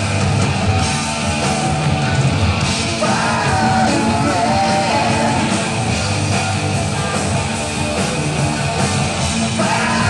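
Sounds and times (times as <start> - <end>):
hard rock band playing live: 0.0 - 10.0.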